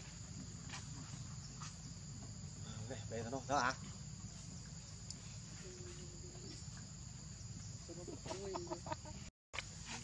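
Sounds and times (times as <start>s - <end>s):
insect drone: 0.0s - 10.0s.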